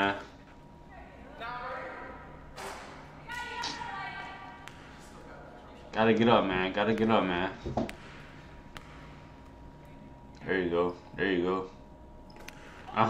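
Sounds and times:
voices echoing in gym: 0:00.0 - 0:13.0.

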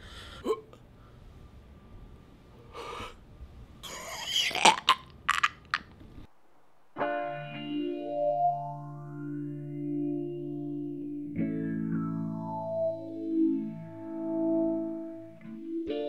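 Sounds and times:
man making throat and mouth noises: 0:04.2 - 0:05.9
electric guitar held notes: 0:07.0 - 0:16.0.

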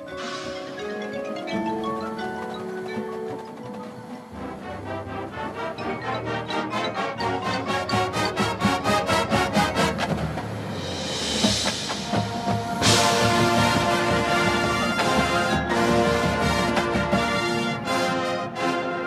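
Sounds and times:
percussion strikes: 0:00.0 - 0:18.9
marching band playing: 0:00.0 - 0:19.0.

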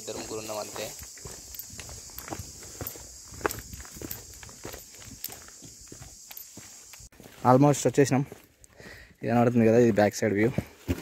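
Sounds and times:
high insect hiss: 0:00.0 - 0:09.5
footsteps crunching on stony trail: 0:00.0 - 0:11.0.

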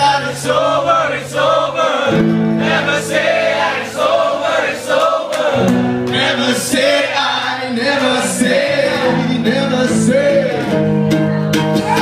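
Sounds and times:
man singing: 0:00.0 - 0:02.2, 0:06.1 - 0:11.0
acoustic guitar chords: 0:00.0 - 0:12.0.

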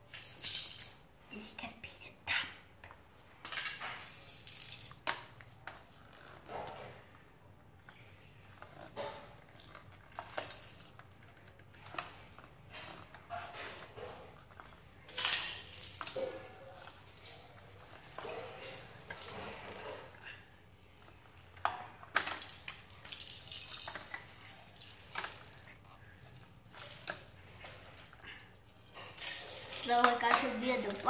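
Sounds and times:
plastic toy pieces clicking: 0:28.0 - 0:31.0.

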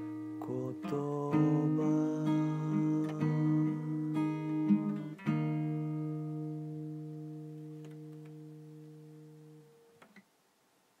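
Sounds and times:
acoustic guitar chord ringing: 0:00.0 - 0:10.1.

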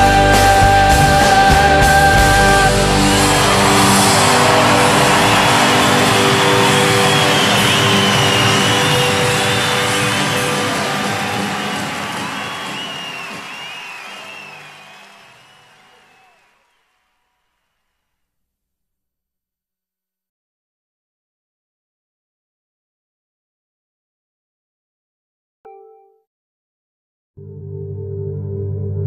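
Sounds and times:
live rock band chord: 0:00.0 - 0:12.6
crowd cheering: 0:00.0 - 0:17.8.

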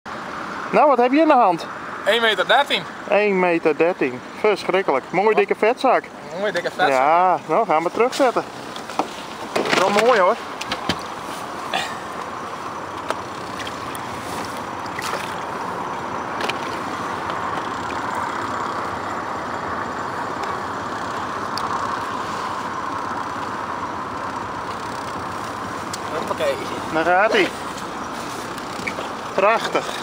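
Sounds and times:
water lapping against boat: 0:08.6 - 0:18.7.

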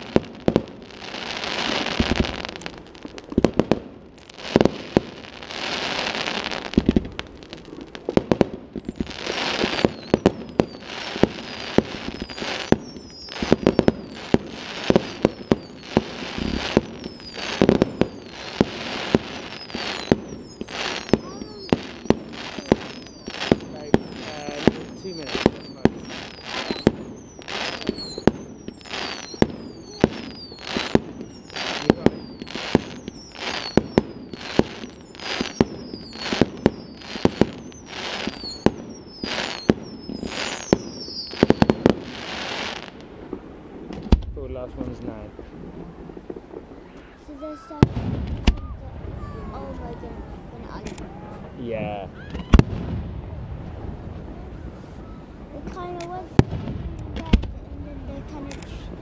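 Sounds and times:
deep firework booms: 0:00.0 - 0:59.0
firework bangs: 0:00.0 - 0:59.0
falling firework whistle: 0:08.8 - 0:42.9, 0:46.2 - 0:53.0, 0:53.7 - 0:55.4.

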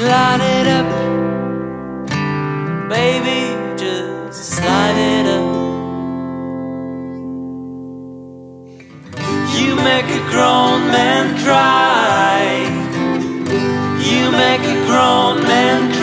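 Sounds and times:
band music with acoustic guitar: 0:00.0 - 0:16.0
wordless sung notes: 0:00.0 - 0:16.0.

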